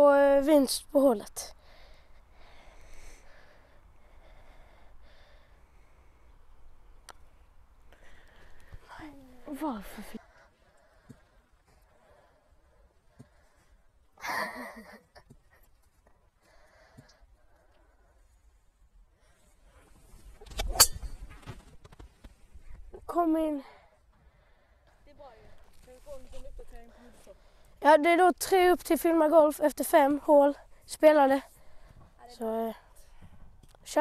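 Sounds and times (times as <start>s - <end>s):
faint background noise: 0.0s - 34.0s
golf club striking ball: 20.5s - 21.3s.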